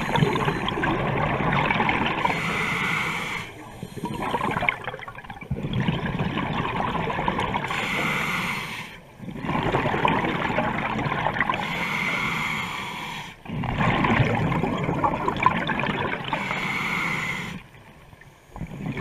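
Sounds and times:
diver breathing through regulator: 0.0s - 0.9s, 2.1s - 4.7s, 7.7s - 9.1s, 11.5s - 13.4s, 16.3s - 17.7s.

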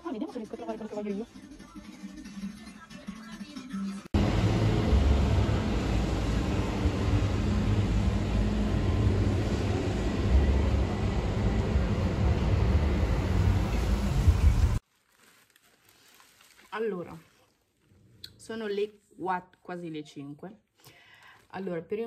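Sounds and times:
low urban rumble: 4.2s - 14.8s.

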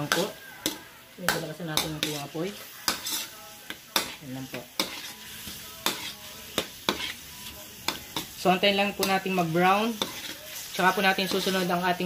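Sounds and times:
meat sizzling in hot oil: 0.0s - 12.0s
metal spatula scraping a wok: 1.8s - 12.0s.

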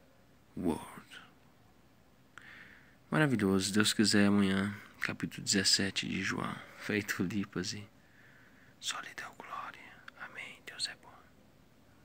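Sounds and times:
faint background hiss: 0.0s - 12.0s
person whispering: 0.6s - 1.4s, 8.8s - 11.3s.

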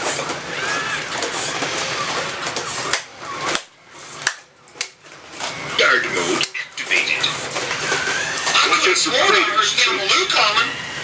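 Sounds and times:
toy robot gear motors whirring: 0.0s - 4.9s, 5.5s - 9.6s.

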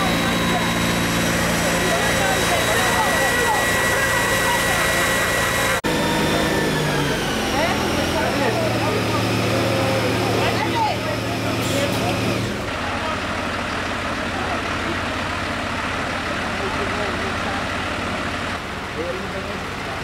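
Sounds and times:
fire engine idling: 0.0s - 20.0s
people talking: 0.0s - 20.0s.

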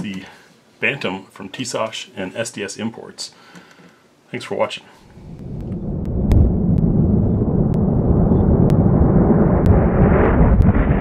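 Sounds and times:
deep thunder-like rumble: 5.1s - 11.0s.

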